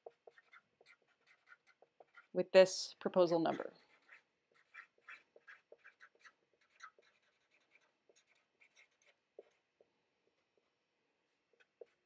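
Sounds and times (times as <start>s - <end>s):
marker pen squeaking on whiteboard: 0.0s - 2.4s, 3.6s - 10.4s, 11.5s - 12.0s.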